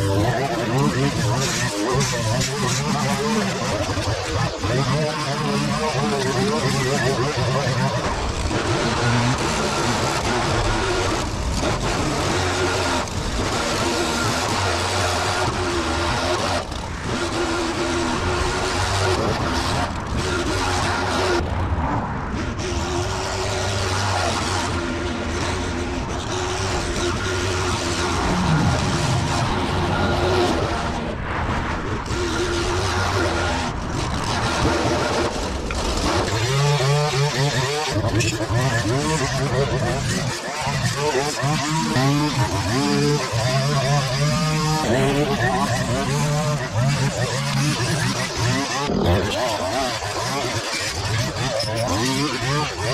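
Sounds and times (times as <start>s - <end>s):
leaf blower running: 0.0s - 21.6s, 32.0s - 52.9s
string trimmer running: 0.0s - 21.7s, 22.5s - 31.0s, 31.8s - 52.9s.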